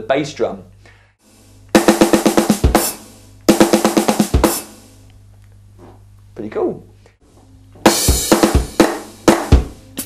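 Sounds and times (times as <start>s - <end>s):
electronic drum fill: 1.7s - 5.0s, 7.8s - 10.0s.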